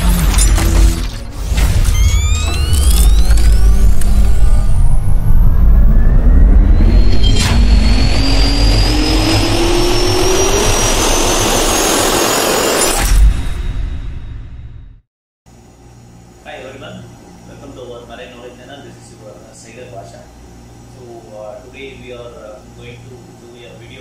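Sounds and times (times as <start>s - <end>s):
deep rumble: 0.0s - 12.6s
sharp hit: 0.0s - 15.0s
jet turbine whine spooling up: 1.5s - 14.8s
fast rising sweeps: 1.9s - 13.0s.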